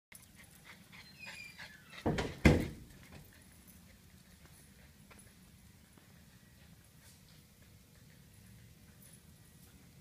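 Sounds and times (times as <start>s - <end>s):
small dog panting: 0.1s - 2.3s, 2.9s - 10.0s.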